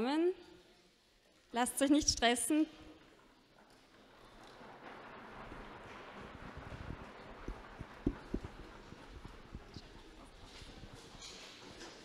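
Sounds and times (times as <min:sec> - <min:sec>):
knocking on desks: 0:07.5 - 0:08.9.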